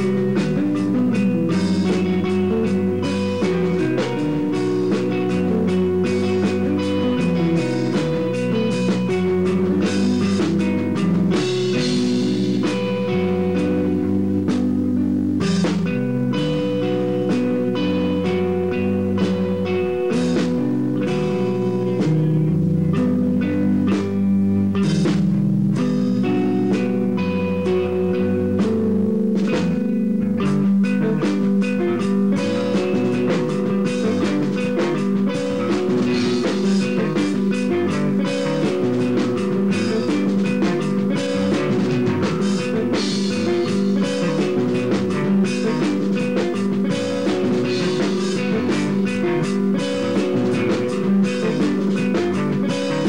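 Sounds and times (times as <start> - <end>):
drum kit: 0.0 - 53.0
electric bass: 0.0 - 53.0
electric guitar: 0.0 - 53.0.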